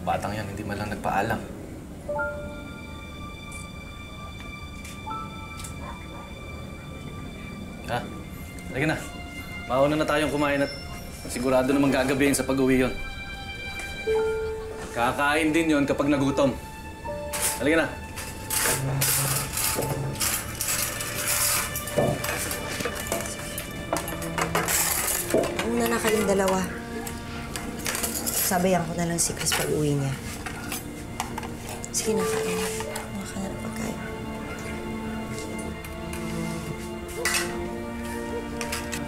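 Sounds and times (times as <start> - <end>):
soft background music: 0.0 - 39.0
plates and cutlery clinking: 17.2 - 33.3, 34.5 - 37.8, 38.5 - 39.0.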